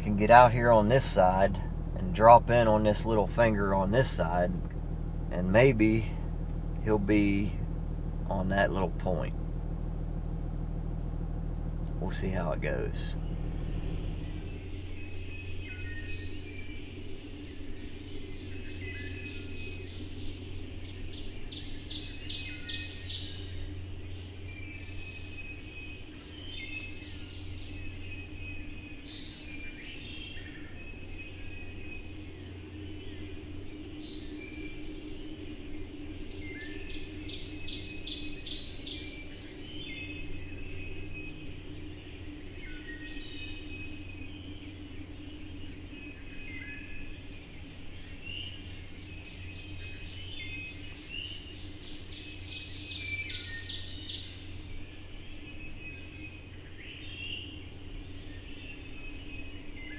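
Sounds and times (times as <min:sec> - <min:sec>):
songbirds singing: 0:00.0 - 0:59.9
steady low hum: 0:00.0 - 0:59.9.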